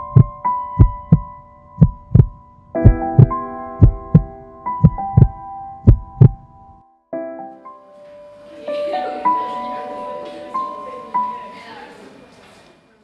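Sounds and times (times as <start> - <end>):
heartbeat double thump: 0.0 - 6.4
sustained keyboard chords: 0.0 - 7.8.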